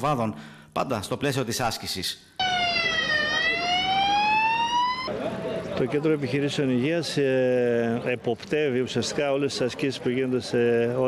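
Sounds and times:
emergency vehicle siren: 2.4 - 5.1.

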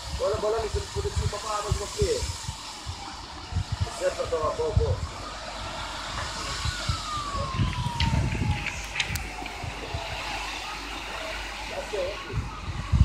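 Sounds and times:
distant siren: 0.0 - 13.0
sharp clicks: 7.7 - 9.6.

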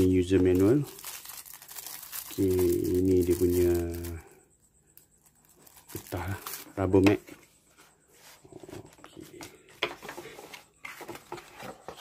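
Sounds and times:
cardboard packaging rustling: 0.0 - 4.2, 5.2 - 7.5, 8.2 - 12.0.

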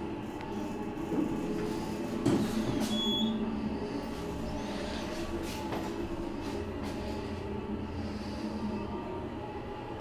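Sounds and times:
elevator car rumbling: 0.0 - 10.0.

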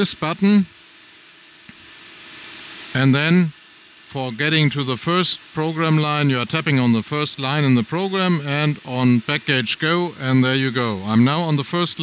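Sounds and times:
paper cutter blower hiss: 0.0 - 12.0.

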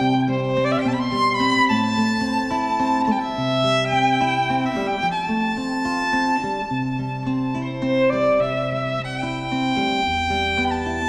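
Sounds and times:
acoustic guitar accompaniment: 0.0 - 11.0
violin melody: 0.0 - 11.0.

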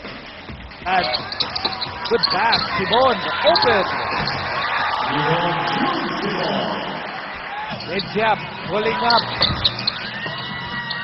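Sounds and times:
commentator speaking: 5.1 - 7.0.

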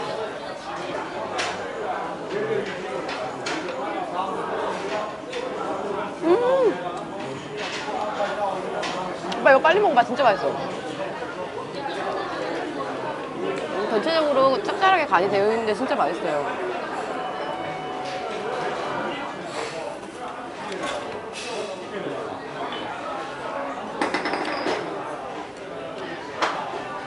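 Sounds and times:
chatter of indistinct voices: 0.0 - 27.0.

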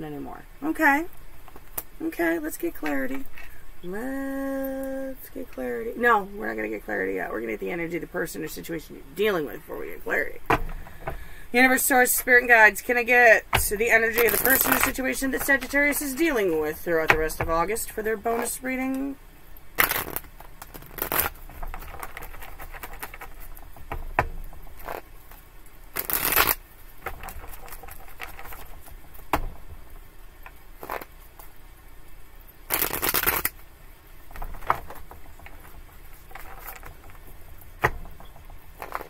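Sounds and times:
cards being shuffled: 13.5 - 19.0, 19.8 - 31.6, 32.7 - 39.0.

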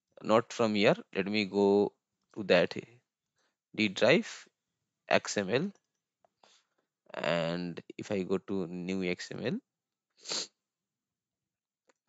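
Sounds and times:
man sniffing breath: 10.2 - 10.5.

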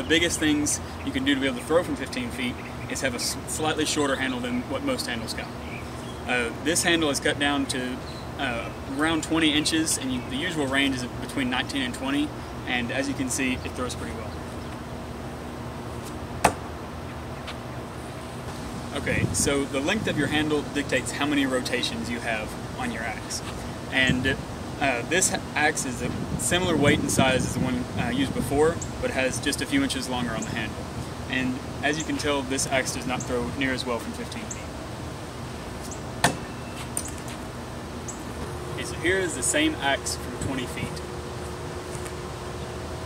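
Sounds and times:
axe striking wooden log: 16.4 - 16.6, 36.2 - 36.4.

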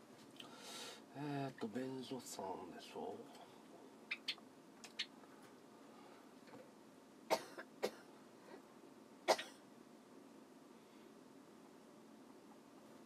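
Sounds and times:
person coughing: 7.3 - 8.1, 9.3 - 9.6.

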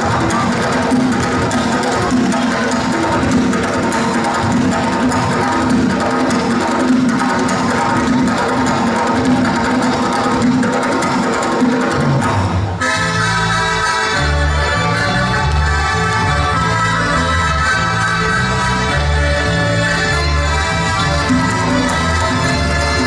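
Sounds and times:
quick drumming: 0.0 - 12.8
folk dance music: 0.0 - 23.0.

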